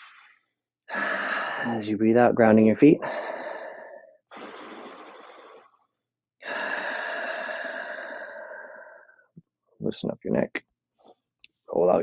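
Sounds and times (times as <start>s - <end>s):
person breathing deeply: 0.0s - 1.9s, 3.0s - 9.3s.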